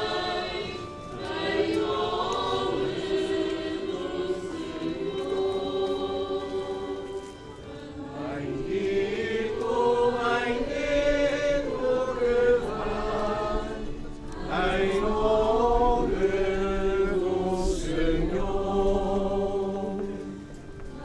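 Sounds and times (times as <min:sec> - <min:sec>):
group singing a slow hymn: 0:00.0 - 0:21.0.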